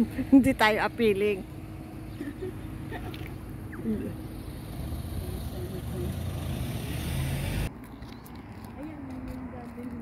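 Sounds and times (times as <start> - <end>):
road traffic rumble: 0.0 - 10.0
vehicle passing: 0.2 - 10.0.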